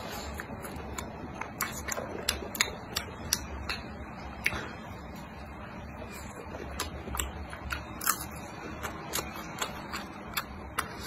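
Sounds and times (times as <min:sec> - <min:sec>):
crunchy chewing: 0:00.0 - 0:04.7, 0:06.0 - 0:11.0.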